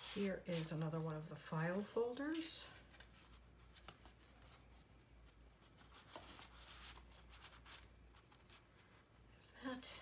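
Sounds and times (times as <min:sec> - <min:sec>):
paper pages rustling: 0:00.0 - 0:09.0.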